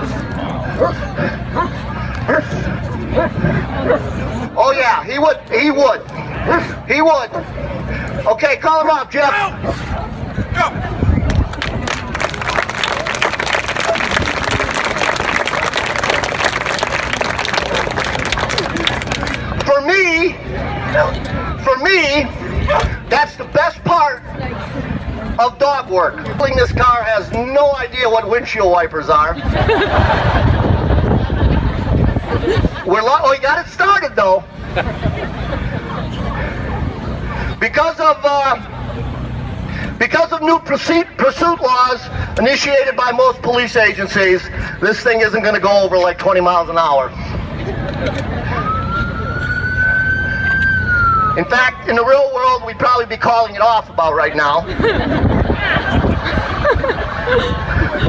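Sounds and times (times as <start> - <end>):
crowd chatter: 0.0 - 58.0
police siren wailing: 48.4 - 52.2.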